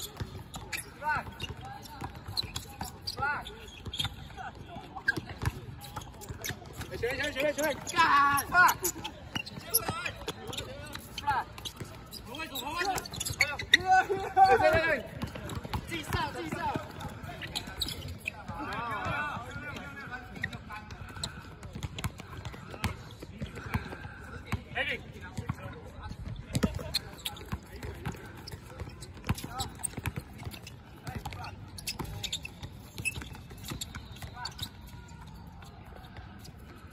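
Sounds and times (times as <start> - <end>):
basketball bouncing on hard court: 0.1 - 3.2, 3.8 - 13.8, 14.5 - 19.2, 20.3 - 24.1, 26.2 - 34.6
players' voices: 0.1 - 34.9.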